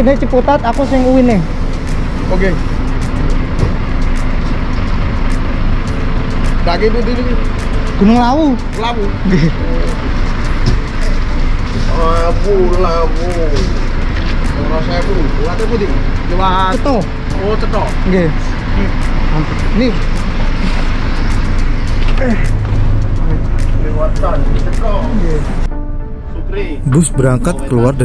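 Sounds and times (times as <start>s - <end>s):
bus engines idling: 0.0s - 25.7s
man talking: 11.9s - 13.8s, 14.5s - 18.0s, 23.3s - 25.6s, 26.4s - 28.0s
other voices: 26.4s - 28.0s.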